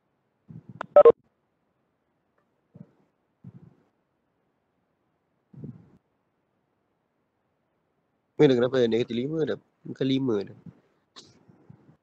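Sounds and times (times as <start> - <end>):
electronic tone blips: 0.8 - 1.1.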